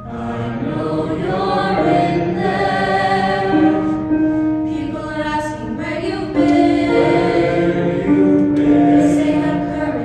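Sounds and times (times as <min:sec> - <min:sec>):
mixed choir singing a cappella: 0:00.0 - 0:10.0.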